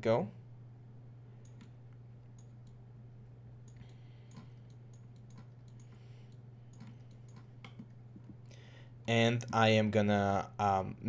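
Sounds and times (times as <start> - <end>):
steady low hum: 0.0 - 11.0
mouse and keyboard clicks: 3.7 - 8.0.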